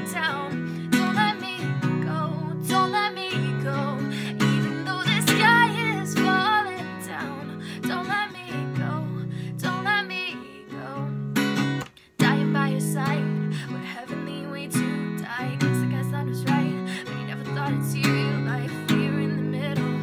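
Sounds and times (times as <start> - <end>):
acoustic guitar strumming: 0.0 - 20.0
woman singing: 0.0 - 20.0.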